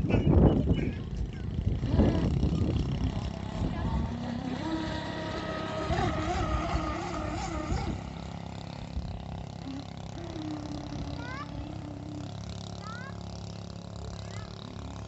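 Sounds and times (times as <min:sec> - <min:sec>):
model boat motor whine: 0:00.0 - 0:15.0.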